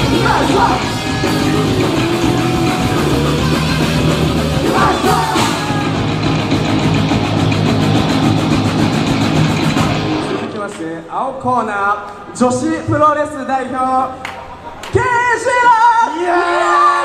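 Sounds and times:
person singing: 0.0 - 6.0
bass guitar: 0.0 - 10.6
distorted electric guitars: 0.0 - 10.8
drums: 0.0 - 10.8.

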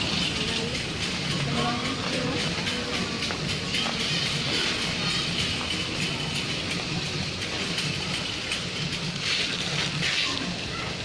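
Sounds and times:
supermarket background noise: 0.0 - 11.0.

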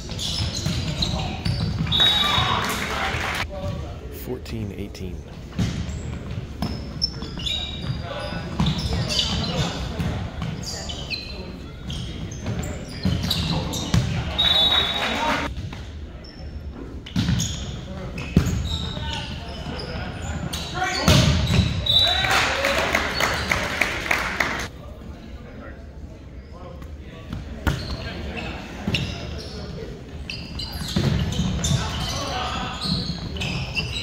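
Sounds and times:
shoes squeaking on wooden floor: 30.2 - 34.0.

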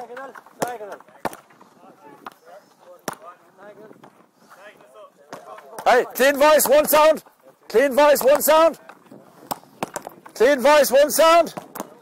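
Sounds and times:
sticks striking balls on tarmac: 0.0 - 4.3, 5.2 - 12.0.

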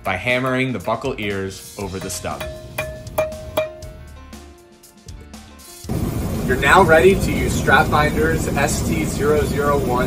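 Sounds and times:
light percussive hits: 1.8 - 4.4
plucked instrument notes: 1.9 - 4.3.

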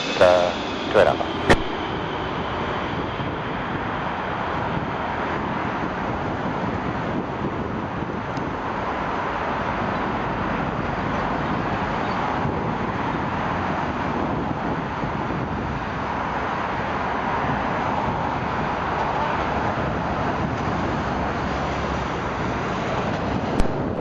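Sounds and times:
jet engines roaring: 0.0 - 14.1
road traffic: 0.0 - 24.0
wind: 0.0 - 24.0.

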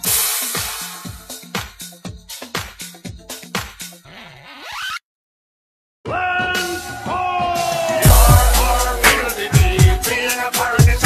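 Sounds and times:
electronic trap beat: 0.0 - 3.6, 7.9 - 11.0
noisy rising sweep: 8.1 - 10.0.

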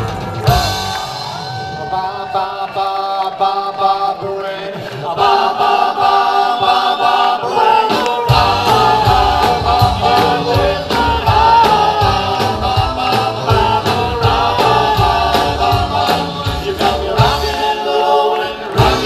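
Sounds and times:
live rock band playing: 0.0 - 1.9, 8.0 - 17.8
voices singing together: 1.6 - 19.0.

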